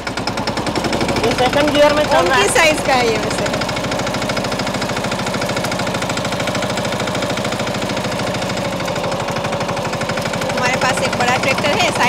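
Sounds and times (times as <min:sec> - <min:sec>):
tractor diesel engine chugging: 0:00.0 - 0:12.0.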